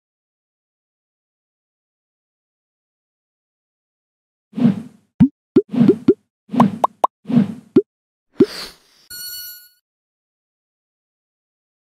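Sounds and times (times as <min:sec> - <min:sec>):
rising cartoon bloop plops: 0:05.2 - 0:07.1
brief swish: 0:08.4 - 0:09.0.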